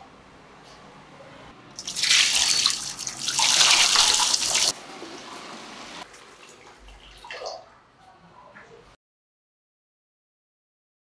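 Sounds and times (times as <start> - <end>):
liquid splashing into plastic tub: 1.8 - 5.4, 6.1 - 7.7
liquid trickling and dripping: 1.8 - 7.8.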